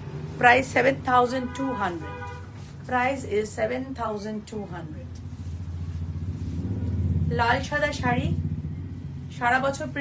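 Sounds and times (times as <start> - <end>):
low motor hum: 5.1 - 9.9.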